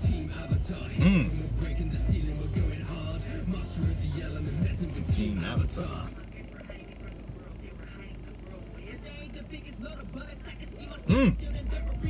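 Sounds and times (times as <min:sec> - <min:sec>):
faint rapping vocals: 0:00.0 - 0:12.0
low steady hum: 0:00.0 - 0:12.0.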